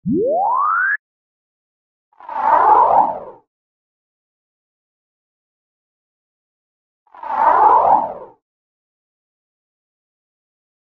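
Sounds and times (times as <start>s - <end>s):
rising comic tone: 0.0s - 1.0s
rough wavering comic effect: 0.0s - 1.0s.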